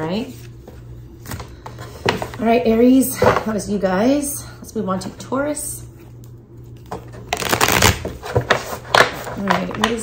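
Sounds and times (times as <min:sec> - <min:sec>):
cards being shuffled by hand: 0:07.3 - 0:10.0.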